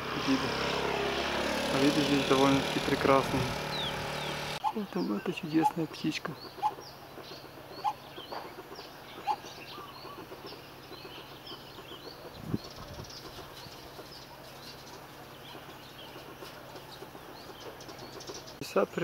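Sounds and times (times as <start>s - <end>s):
small birds chirping: 0.0s - 19.0s.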